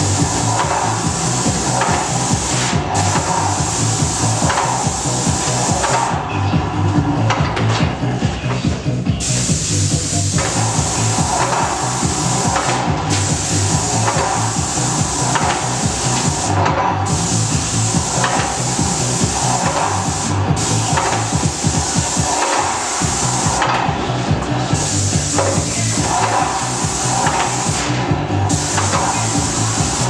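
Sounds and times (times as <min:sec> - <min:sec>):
low rhythmic pulsing: 0:00.0 - 0:30.0
paint sprayer hissing: 0:00.0 - 0:30.0.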